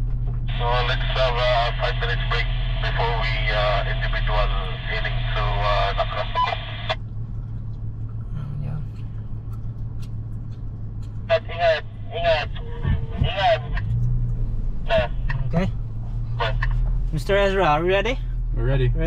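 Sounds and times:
car engine droning inside cabin: 0:00.0 - 0:19.0.

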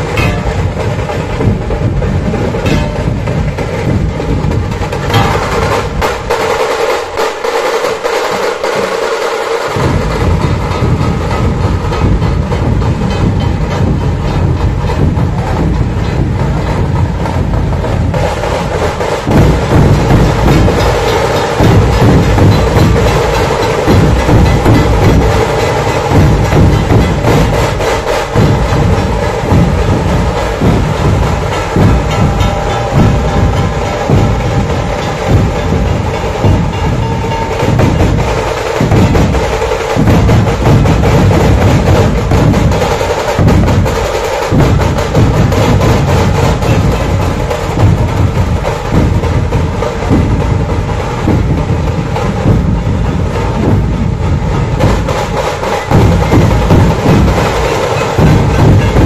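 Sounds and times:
dhol drums played with sticks: 0:00.0 - 0:59.0.

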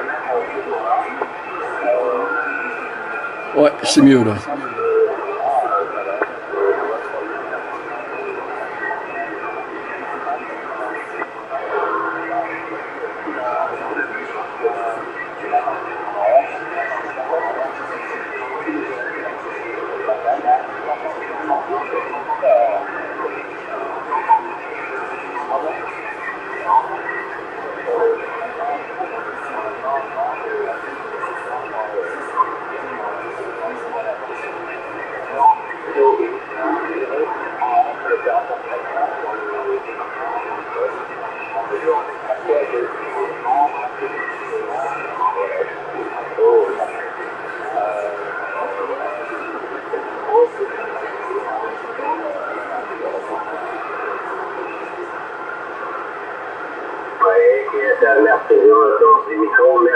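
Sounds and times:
tinny radio voices: 0:03.4 - 0:04.8, 0:57.2 - 0:59.9
radio static hiss: 0:56.7 - 0:59.9.

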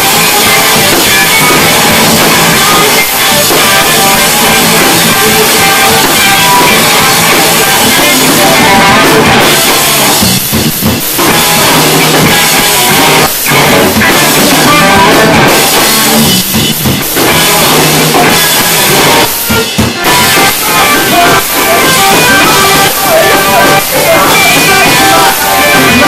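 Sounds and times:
drum kit: 0:00.0 - 0:26.0
electric guitars: 0:00.0 - 0:26.0.

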